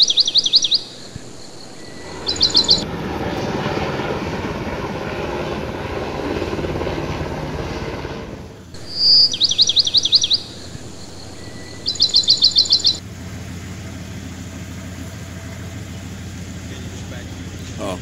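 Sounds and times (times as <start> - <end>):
bird chirping: 0.0 - 2.8, 8.8 - 13.0
helicopter rotor noise: 0.0 - 18.0.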